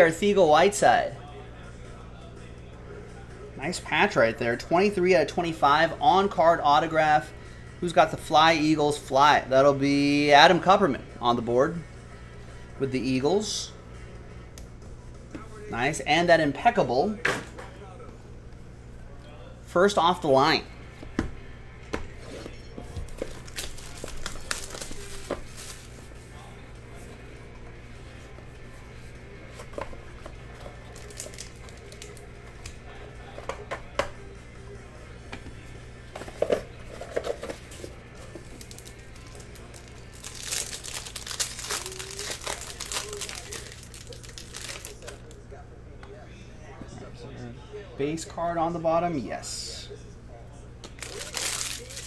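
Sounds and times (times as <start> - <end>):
shrink wrap crinkling: 23.1 - 26.5, 30.5 - 32.8, 36.4 - 45.4, 50.8 - 52.0.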